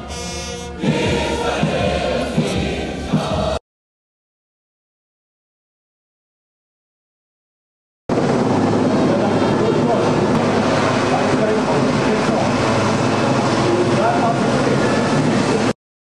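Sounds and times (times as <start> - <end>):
indistinct voices: 0.8 - 3.6, 8.6 - 15.8
helicopters flying overhead: 8.1 - 15.7.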